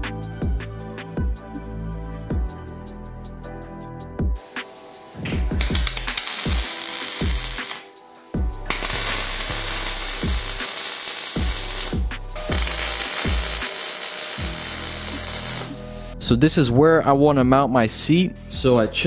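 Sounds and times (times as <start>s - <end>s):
background music with beat: 0.0s - 16.2s
welding arc crackling: 5.6s - 7.9s, 8.7s - 16.1s.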